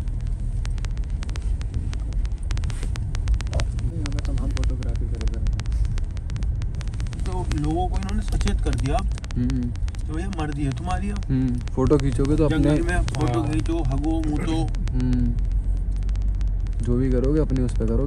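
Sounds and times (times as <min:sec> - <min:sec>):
small sharp clicks: 0:00.0 - 0:18.0
tyres and engine rumble: 0:00.0 - 0:18.0.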